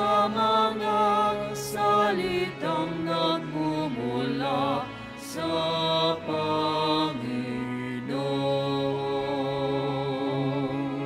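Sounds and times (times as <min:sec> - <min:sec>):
slow church singing: 0:00.0 - 0:11.0.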